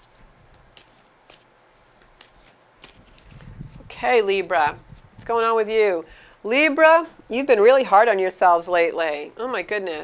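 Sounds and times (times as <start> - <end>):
cards being shuffled: 0.0 - 3.9.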